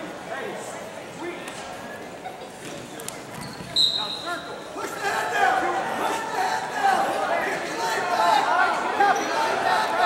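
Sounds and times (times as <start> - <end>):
chatter of voices: 0.0 - 10.0.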